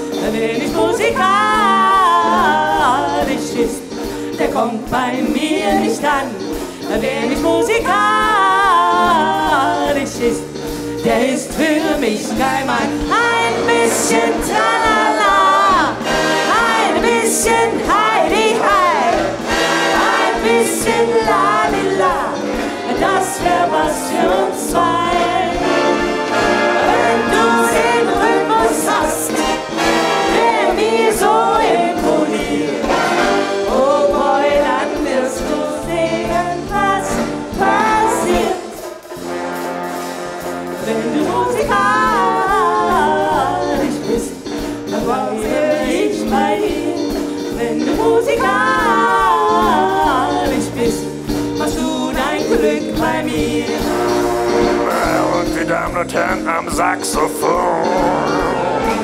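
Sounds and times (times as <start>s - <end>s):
singers singing into microphones: 0.0s - 39.4s, 40.4s - 59.0s
brass band playing pop song: 0.0s - 59.0s.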